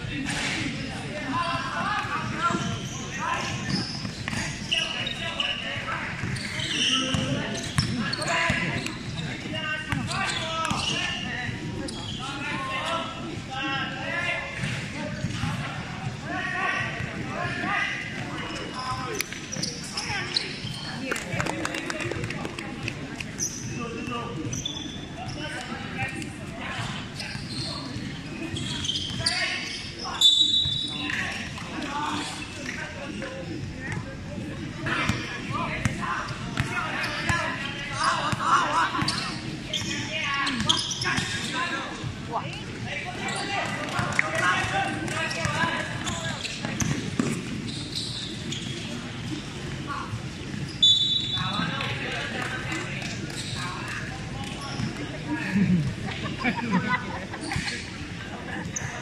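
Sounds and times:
referee whistle blasts: 0:50.8 - 0:51.5.

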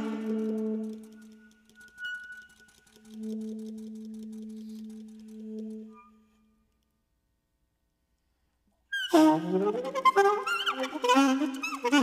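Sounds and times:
loud saxophone playing: 0:09.0 - 0:12.0.

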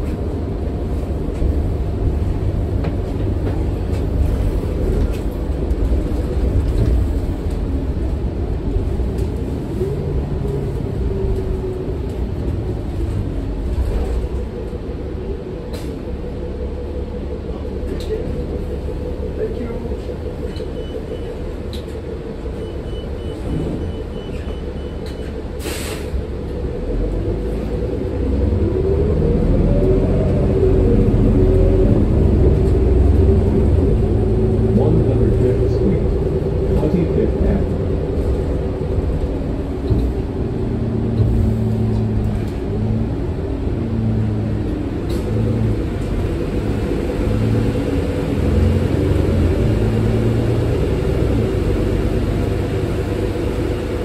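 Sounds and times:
bus engine: 0:00.0 - 0:54.0.

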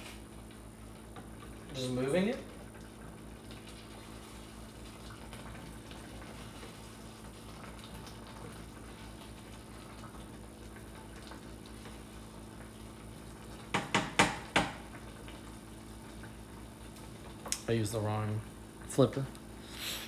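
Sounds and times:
faint steady hum: 0:00.0 - 0:20.0
spatula knocking on metal pot: 0:13.7 - 0:14.8.

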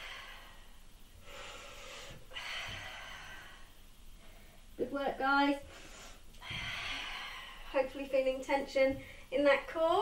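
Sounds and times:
woman breathing hard: 0:00.0 - 0:04.8, 0:05.6 - 0:07.8.

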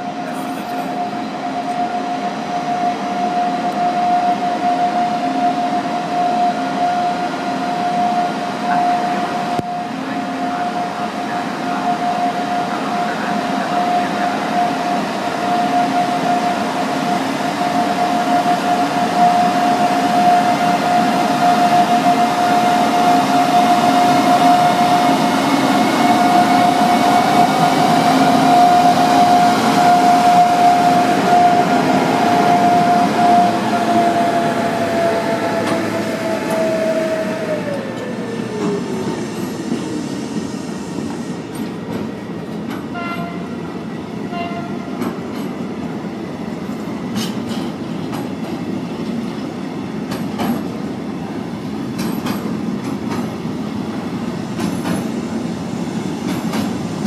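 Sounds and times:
freight train passing: 0:00.0 - 0:57.0.

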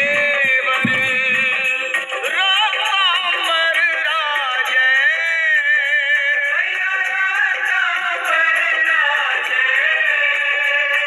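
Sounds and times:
devotional song with instruments: 0:00.0 - 0:11.0.

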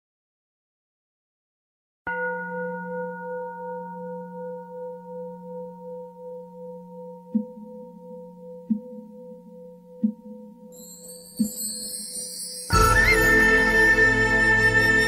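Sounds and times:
singing bowl ringing: 0:02.1 - 0:13.8
high shimmering chime: 0:10.7 - 0:15.0.

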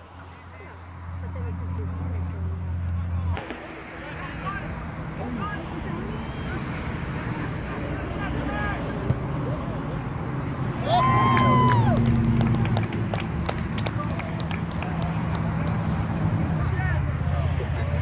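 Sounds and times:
voices calling out: 0:00.0 - 0:12.2
loud drawn-out shout: 0:10.8 - 0:12.2.

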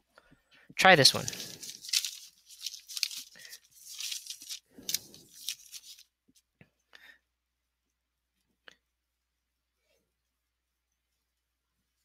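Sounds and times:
hand rustling notebook paper: 0:01.0 - 0:06.2.

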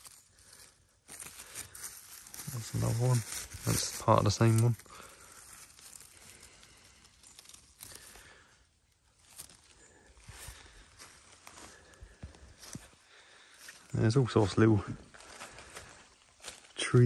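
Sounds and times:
dry grass and leaves rustling: 0:00.0 - 0:17.0.

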